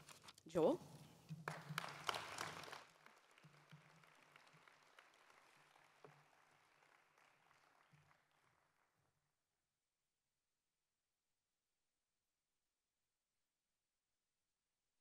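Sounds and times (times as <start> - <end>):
audience applause: 1.4 - 9.0.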